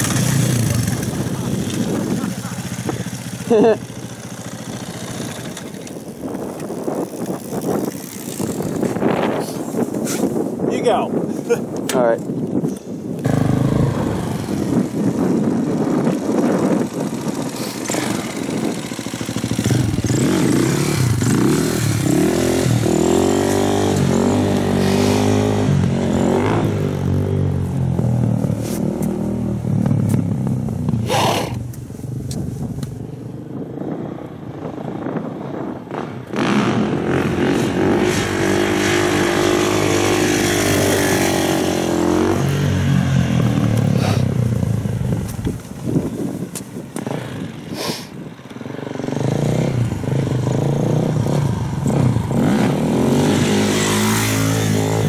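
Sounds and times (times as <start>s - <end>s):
motorcycle engine revving: 0.0s - 9.8s, 13.2s - 32.3s, 33.5s - 46.0s, 47.0s - 47.7s, 48.5s - 55.0s.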